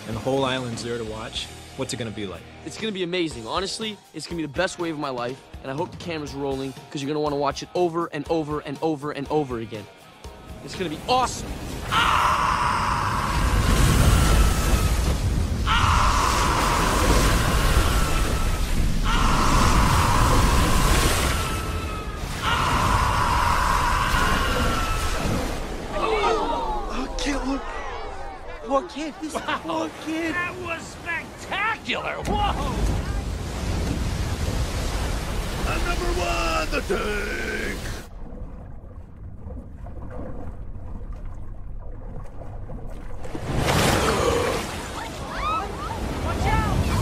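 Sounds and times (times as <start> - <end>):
muffled underwater churning water: 10.6 - 31.5, 32.2 - 47.0
huge wave breaking: 10.8 - 38.1
long high scream: 11.9 - 15.0, 15.7 - 25.3.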